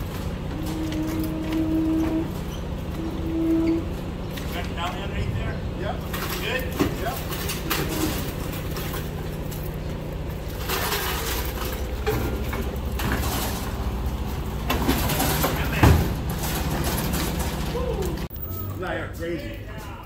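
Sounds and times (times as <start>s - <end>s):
truck engine idling: 0.0s - 19.8s
metal knocks and clatter: 6.0s - 18.3s.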